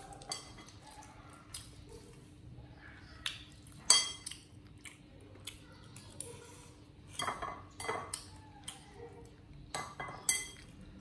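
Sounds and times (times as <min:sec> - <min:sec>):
metal spoon clinking in ceramic bowl: 0:00.3 - 0:00.8, 0:03.9 - 0:04.3, 0:07.2 - 0:08.3, 0:09.7 - 0:10.7.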